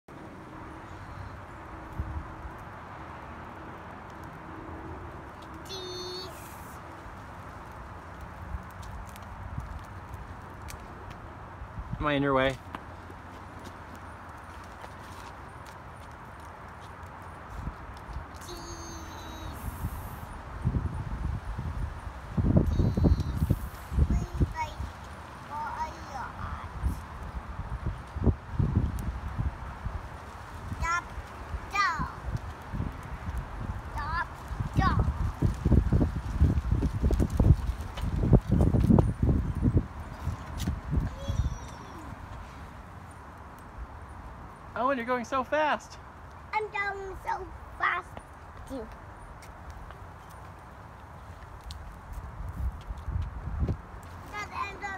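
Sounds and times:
steady outdoor hiss: 0.1 - 54.9
faint child's voice: 5.6 - 6.8, 18.4 - 20.2, 22.6 - 24.9, 25.5 - 27.0, 31.7 - 32.3, 34.0 - 35.1, 41.0 - 42.4, 54.3 - 54.9
child's feet scuffing on concrete: 12.6 - 20.2, 40.0 - 42.6, 48.0 - 54.9
balance bikes rolling: 21.8 - 43.3
small shoes scuffing on concrete: 49.4 - 50.6.

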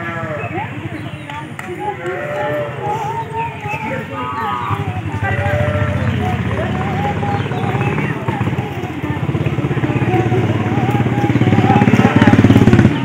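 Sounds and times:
women singing: 0.0 - 13.0
fast rhythmic pulsing beat: 2.8 - 13.0.

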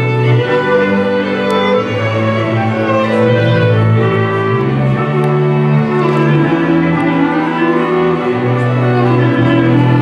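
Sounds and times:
cimbalom band folk music: 0.0 - 10.0.

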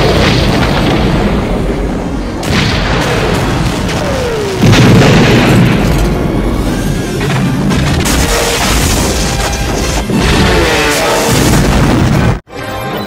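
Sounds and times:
explosions: 0.0 - 12.4
background music: 9.2 - 13.0.

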